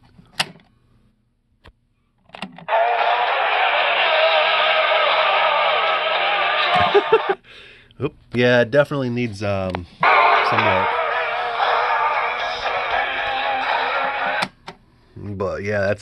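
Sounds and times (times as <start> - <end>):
tinny cassette playback: 10.0 - 14.8.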